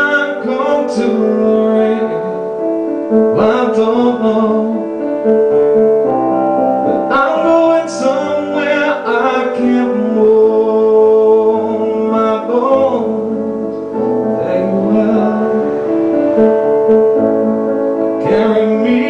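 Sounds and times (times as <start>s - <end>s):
man singing into a microphone: 0.0s - 5.3s, 6.8s - 16.2s, 18.1s - 19.0s
piano playing held chords: 0.0s - 19.0s.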